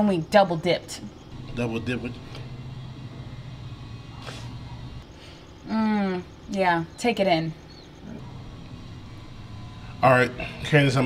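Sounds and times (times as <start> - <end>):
low background rumble: 1.2 - 5.1, 8.2 - 11.0
short breathy hiss: 4.2 - 4.6.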